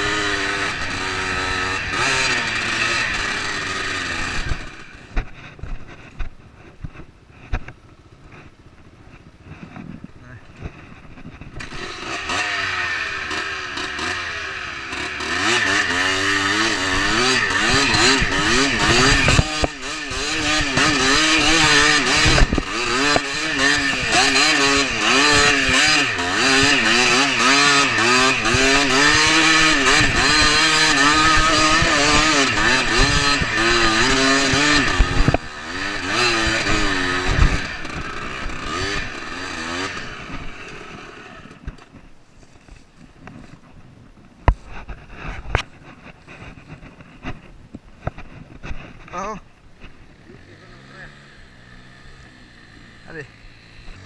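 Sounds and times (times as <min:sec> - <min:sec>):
dirt bike engine revving: 0:00.0 - 0:07.6, 0:08.2 - 0:42.1, 0:44.5 - 0:54.0.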